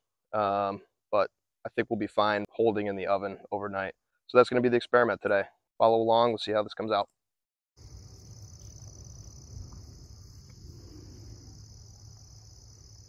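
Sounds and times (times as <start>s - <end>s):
high-pitched insect chorus: 7.8s - 13.0s
low outdoor rumble: 7.8s - 13.0s.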